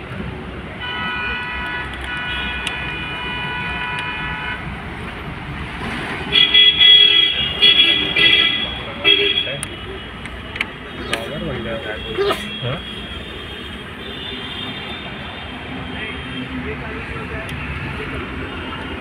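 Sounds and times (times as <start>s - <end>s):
traffic rumble: 0.0s - 19.0s
vehicle horns honking: 0.8s - 4.6s, 6.3s - 10.2s.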